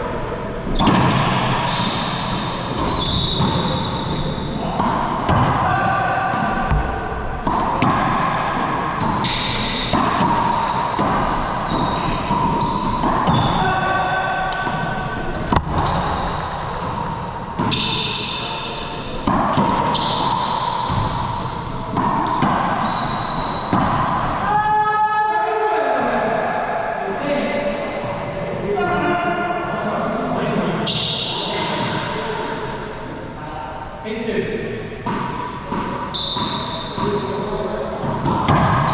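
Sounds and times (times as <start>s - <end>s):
sneakers squeaking on hardwood floor: 0.7s - 5.4s, 8.9s - 13.7s, 15.4s - 24.0s, 35.1s - 38.9s
ball cracking off racquets and walls: 15.4s - 16.5s.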